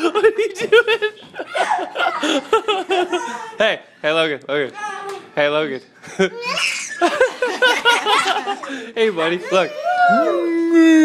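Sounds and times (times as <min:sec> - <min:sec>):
baby laughing: 0:06.2 - 0:10.6
adult laughing: 0:07.0 - 0:09.5.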